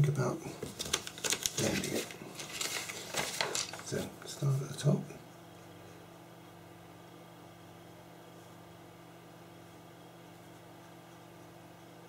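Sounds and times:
paper rustling and sliding: 0:00.6 - 0:04.5.

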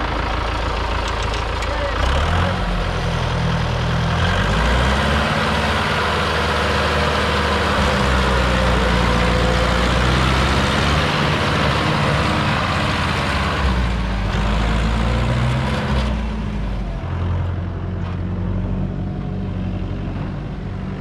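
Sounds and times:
tractor diesel engine running: 0:00.0 - 0:21.0.

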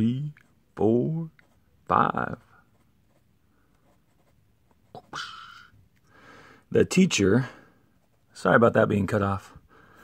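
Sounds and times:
pencil scratching on paper: 0:01.2 - 0:05.1, 0:08.0 - 0:08.6.

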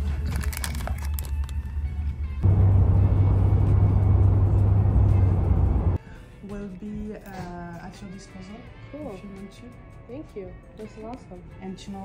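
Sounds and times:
background music: 0:00.0 - 0:12.0
road and engine rumble: 0:01.4 - 0:06.0.

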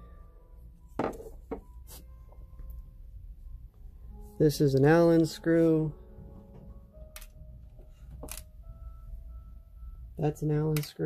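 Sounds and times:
low hum: 0:02.1 - 0:10.8
small parts clicking and tapping: 0:08.1 - 0:08.5.

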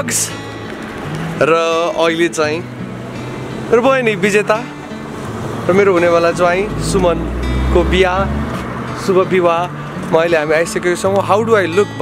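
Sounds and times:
man speaking: 0:05.7 - 0:08.4.

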